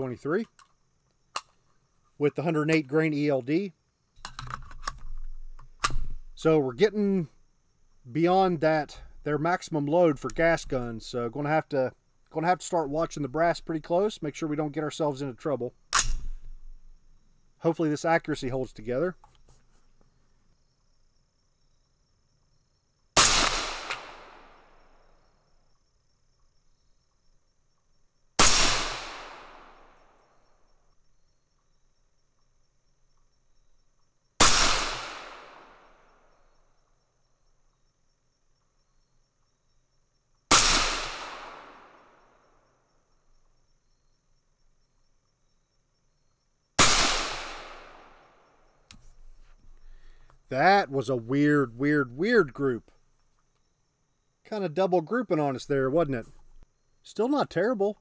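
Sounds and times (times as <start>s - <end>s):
rifle shots echoing: 23.2s - 24.7s, 28.4s - 29.9s, 34.4s - 35.8s, 40.5s - 42.0s, 46.8s - 48.2s.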